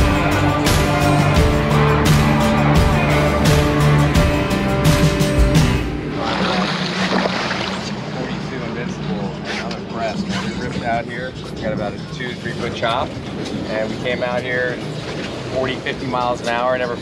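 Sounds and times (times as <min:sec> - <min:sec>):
boat engine drone: 0:00.0 - 0:17.0
rush of wind and water: 0:05.8 - 0:17.0.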